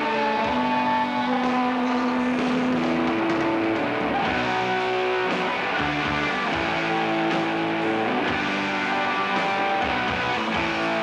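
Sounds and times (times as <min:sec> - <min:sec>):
distorted electric guitar: 0:00.0 - 0:11.0
hard rock band playing: 0:00.0 - 0:11.0.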